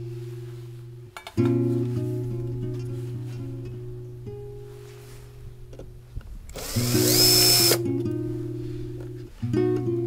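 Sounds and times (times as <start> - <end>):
acoustic guitar music: 0.0 - 10.0
cordless drill whining: 6.5 - 7.8.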